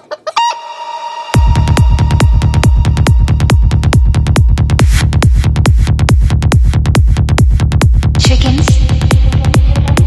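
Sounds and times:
sampled chicken clucks: 0.0s - 0.8s
kick drum and bassline: 1.4s - 10.0s.

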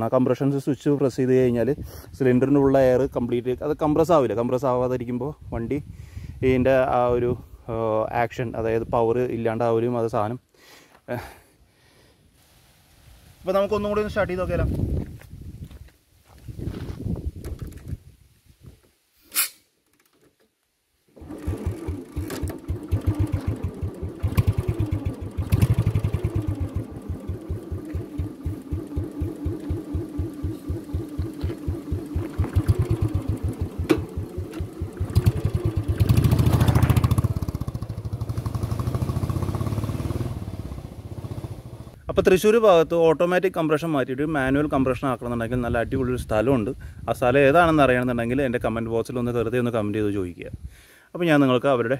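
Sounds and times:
motorcycle engine starting: 21.1s - 42.0s
motorcycle engine revving: 21.2s - 42.0s
motorcycle engine idling: 21.8s - 42.0s.

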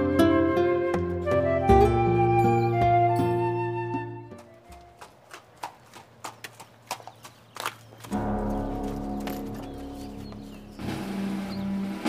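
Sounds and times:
horse hooves clopping on hard ground: 4.3s - 12.0s.

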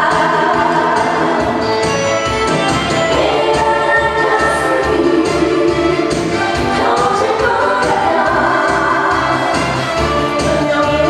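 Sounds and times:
woman singing into microphone: 0.0s - 1.7s, 3.1s - 6.0s, 6.7s - 9.6s, 10.4s - 11.0s
instrumental accompaniment: 0.0s - 11.0s.

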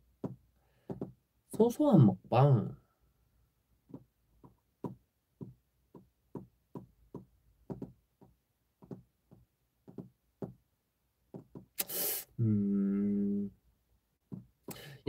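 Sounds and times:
soft dull taps: 0.2s - 1.2s, 3.8s - 10.6s, 11.3s - 11.7s, 14.3s - 14.8s
man humming: 12.3s - 13.6s
breath into microphone: 14.7s - 15.0s.

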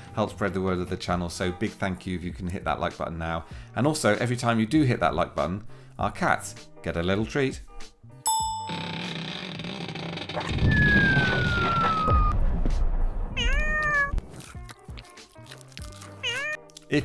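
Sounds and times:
falling whistle: 10.5s - 12.4s
cat meowing: 13.4s - 14.2s, 16.2s - 16.6s.

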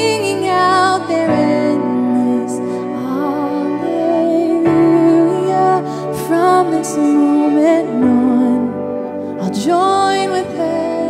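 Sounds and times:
keyboard chords: 0.0s - 11.0s
woman singing: 0.0s - 11.0s.

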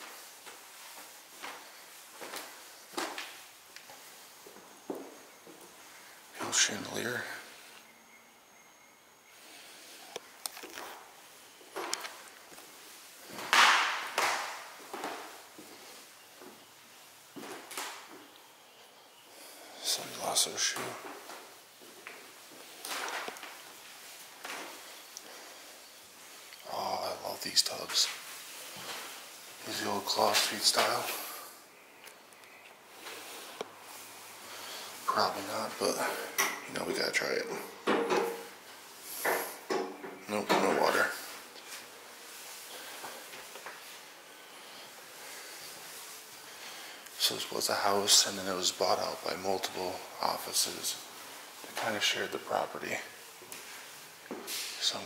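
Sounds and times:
footsteps on hardwood floor: 0.0s - 5.8s, 13.3s - 15.8s.

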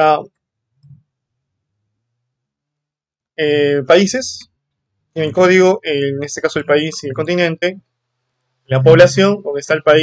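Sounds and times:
person speaking: 3.4s - 4.5s, 5.2s - 7.8s, 8.7s - 10.0s.

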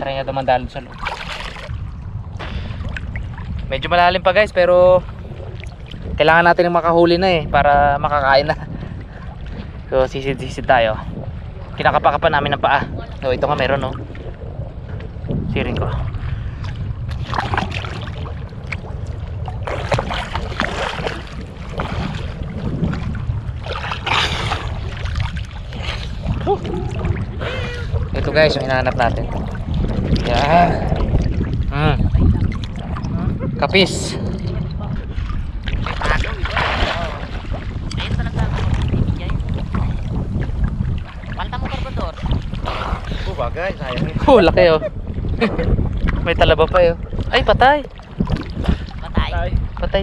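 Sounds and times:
seawater sloshing and splashing: 0.0s - 7.2s, 8.5s - 50.0s
low rumble of water: 0.0s - 50.0s
wind on microphone: 0.0s - 50.0s.

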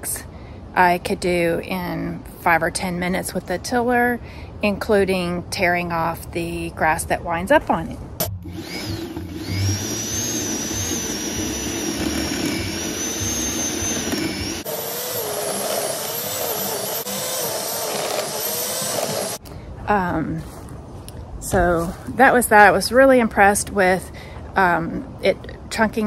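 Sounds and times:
electric tiller motor whining: 8.2s - 19.4s
tines churning dry soil: 8.5s - 19.4s.

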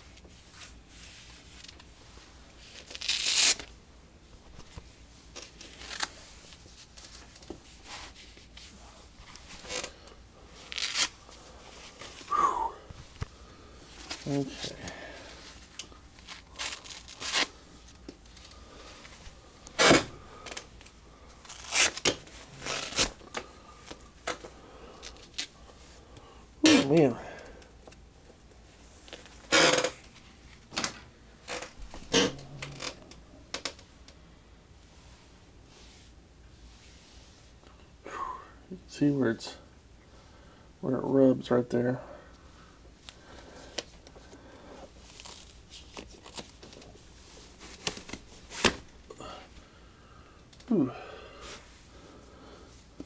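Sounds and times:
fabric straps ripping: 2.6s - 3.7s, 5.4s - 6.2s, 10.6s - 11.2s, 16.2s - 17.6s, 19.8s - 20.6s, 21.5s - 23.2s, 31.5s - 33.1s, 45.0s - 46.9s.

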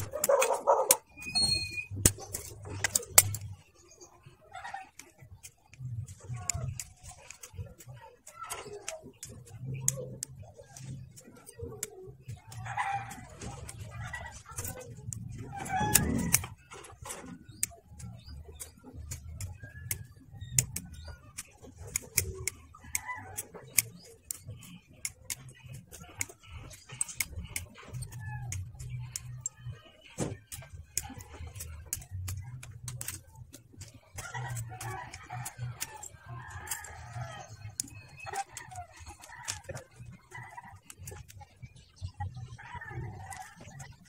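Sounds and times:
side-cutters snipping plastic: 0.0s - 3.9s, 4.9s - 42.4s
birds calling: 0.0s - 44.0s.

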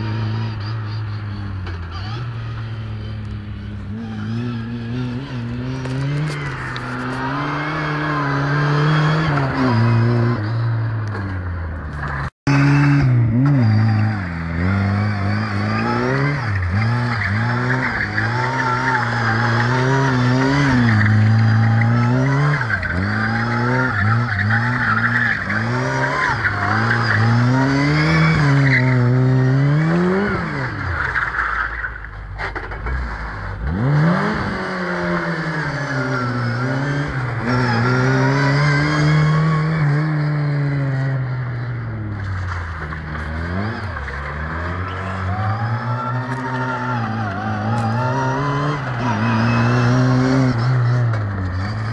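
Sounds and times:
car engine revving: 0.0s - 51.9s
tyres squealing: 12.5s - 32.9s, 42.3s - 51.9s.

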